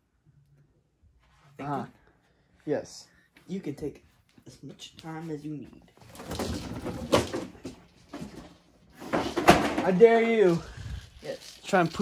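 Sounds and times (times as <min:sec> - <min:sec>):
person speaking: 0:02.7 - 0:05.9, 0:09.8 - 0:12.0
rummaging through clutter: 0:05.0 - 0:12.0.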